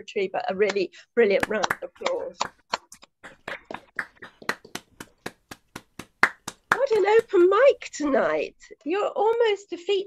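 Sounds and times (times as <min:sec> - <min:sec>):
hand clapping over video call: 0:01.4 - 0:07.8.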